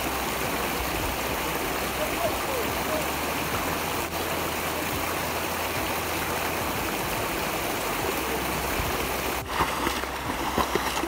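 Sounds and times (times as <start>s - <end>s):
creek water running over rocks: 0.0s - 11.0s.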